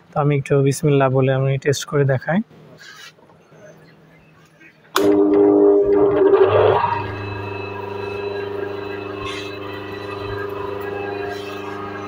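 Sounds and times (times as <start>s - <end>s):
electric motor humming: 5.0s - 12.0s.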